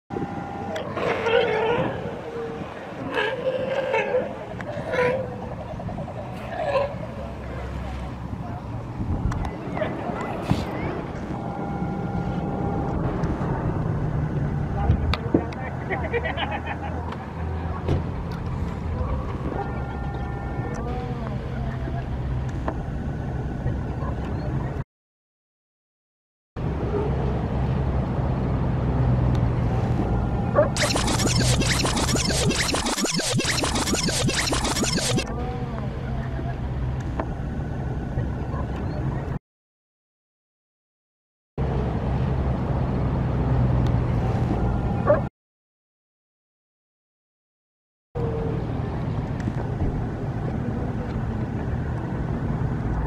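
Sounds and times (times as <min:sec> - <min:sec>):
low engine-like drone: 0:00.1 - 0:15.8
outdoor noise: 0:00.1 - 0:24.8, 0:26.6 - 0:39.4, 0:41.6 - 0:45.3, 0:48.2 - 0:53.0
sea lion groaning call: 0:00.9 - 0:05.5
hum: 0:30.8 - 0:35.3.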